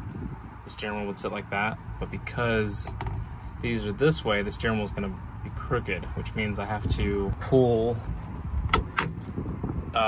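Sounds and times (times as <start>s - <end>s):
low handling rumble: 0.0s - 10.0s.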